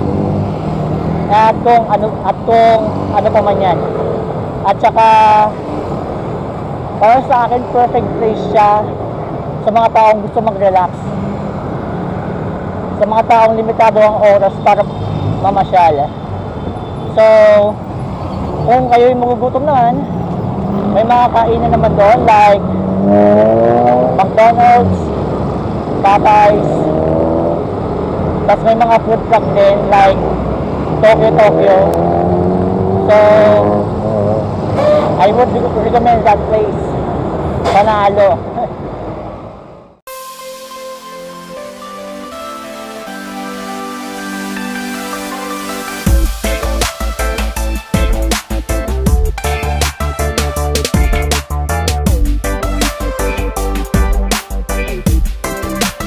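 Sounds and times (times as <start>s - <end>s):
road traffic noise: 0.0s - 56.0s
person speaking: 1.2s - 4.0s, 4.6s - 5.7s, 6.9s - 9.0s, 9.6s - 11.2s, 12.9s - 16.2s, 18.6s - 20.1s, 20.8s - 22.7s, 23.8s - 25.2s, 25.9s - 26.9s, 28.5s - 30.3s, 31.0s - 32.1s, 33.0s - 37.0s, 37.6s - 38.8s
vehicle horn honk: 34.8s - 35.2s.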